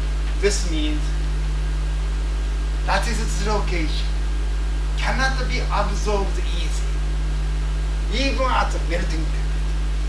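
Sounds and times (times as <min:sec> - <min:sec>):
even hiss: 0:00.0 - 0:10.0
steady low hum: 0:00.0 - 0:10.0
man speaking: 0:00.4 - 0:01.2, 0:02.9 - 0:04.1, 0:05.0 - 0:07.0, 0:08.1 - 0:09.5.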